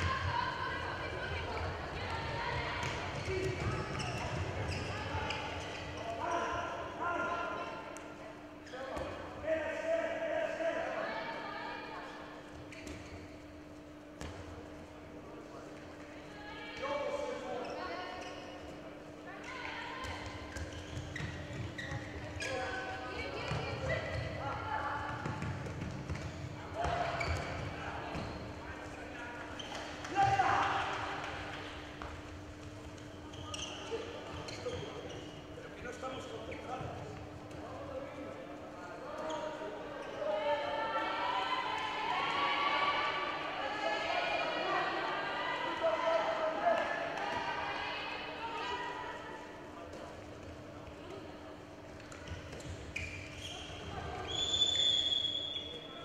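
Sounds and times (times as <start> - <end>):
handball bouncing on court: 1.6 - 5.4, 20.0 - 22.5, 23.4 - 28.4.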